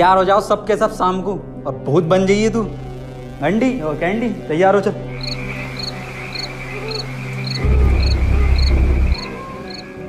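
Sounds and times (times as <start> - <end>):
low music drone: 0.0 - 10.0
crickets chirping: 4.2 - 10.0.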